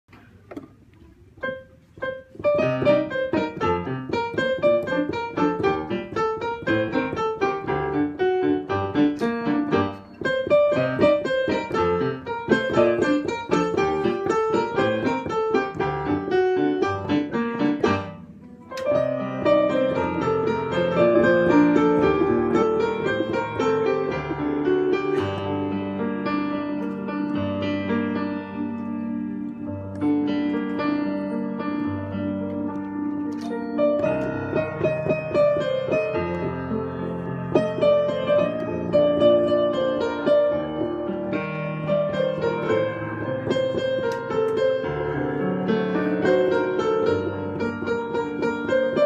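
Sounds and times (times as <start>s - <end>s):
digital piano playing: 1.4s - 49.0s.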